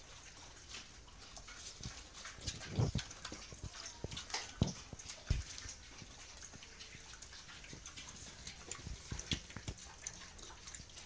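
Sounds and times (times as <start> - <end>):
pigs chewing and snuffling: 0.0 - 11.0.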